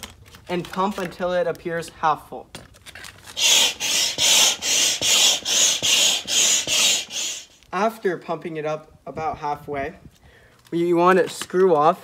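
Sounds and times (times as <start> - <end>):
hand pump air rush: 3.3 - 7.7.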